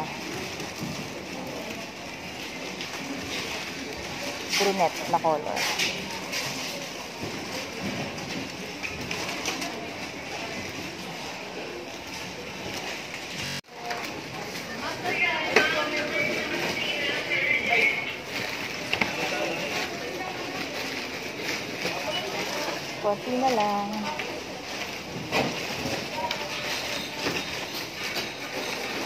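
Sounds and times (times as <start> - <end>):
clatter of items handled: 0.0 - 29.0
indistinct voices of shoppers: 0.0 - 29.0.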